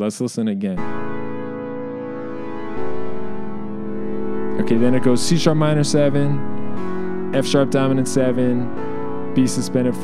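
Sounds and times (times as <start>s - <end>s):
keyboard chords: 0.7s - 10.0s.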